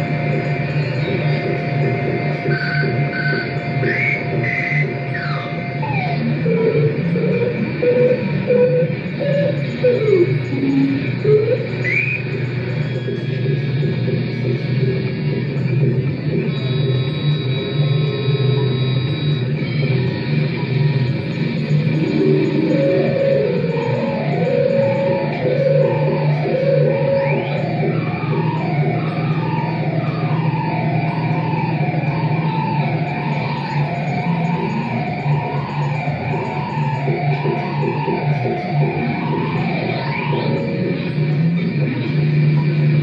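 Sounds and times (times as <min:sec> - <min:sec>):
low amplifier hum: 0:00.0 - 0:43.0
noisy electronic wash: 0:00.0 - 0:43.0.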